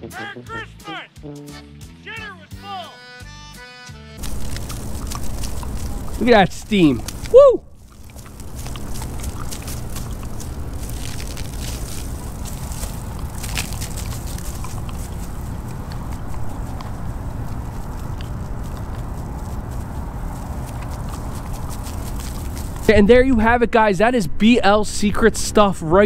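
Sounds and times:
garden hose spraying water: 4.2 - 23.0
low rumble: 4.2 - 24.7.

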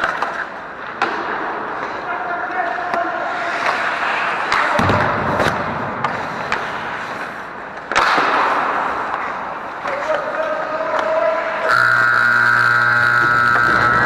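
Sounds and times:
skates scraping ice: 0.0 - 11.7
sticks and puck clattering: 0.0 - 12.0
buzzing game horn: 11.6 - 14.0.

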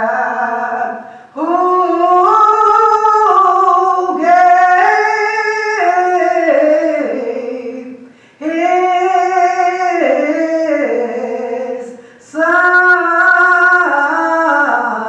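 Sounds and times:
woman singing a hymn unaccompanied: 0.0 - 15.0.

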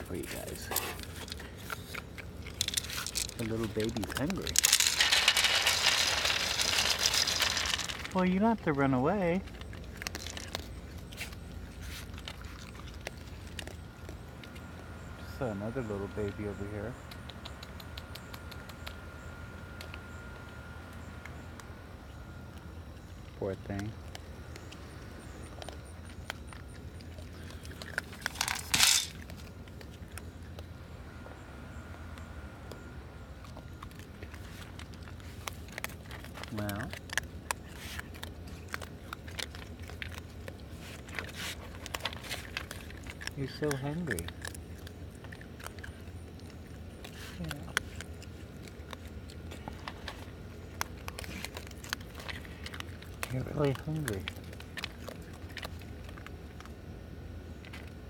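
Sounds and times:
raccoon crunching kibble: 0.0 - 58.0
steady low hum: 0.0 - 58.0
kibble clinking on metal tray: 2.6 - 8.1, 28.2 - 29.2
loud rustling: 4.5 - 8.2.

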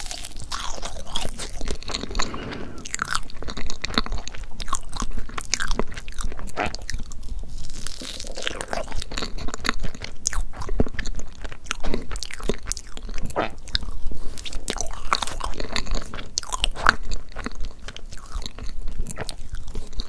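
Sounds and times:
person chewing cake: 0.0 - 20.0.

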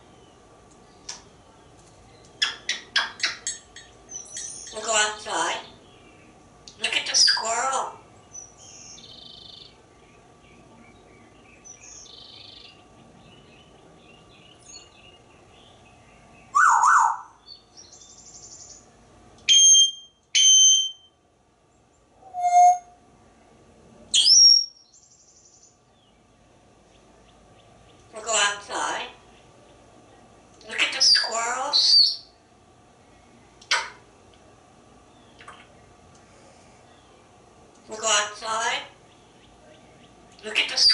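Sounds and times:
parrot whistles and calls: 16.5 - 17.4, 19.5 - 21.1, 22.2 - 23.0, 24.1 - 24.8, 31.1 - 32.3.

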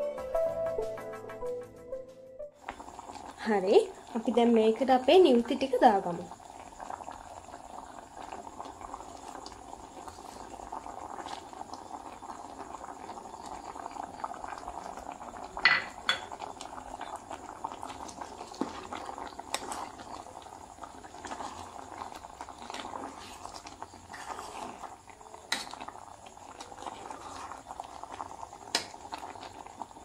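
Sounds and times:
curry bubbling in saucepan: 2.6 - 30.0.

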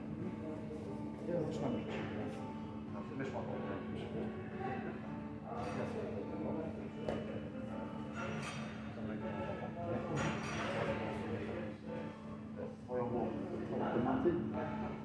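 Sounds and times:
music playing: 0.0 - 15.0.

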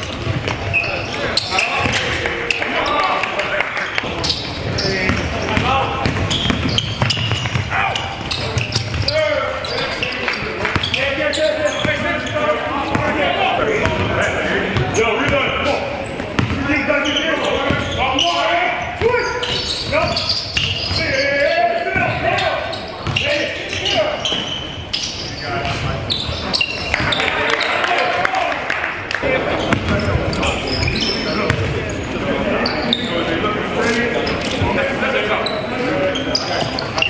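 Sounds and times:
players calling and shouting: 0.0 - 37.0.

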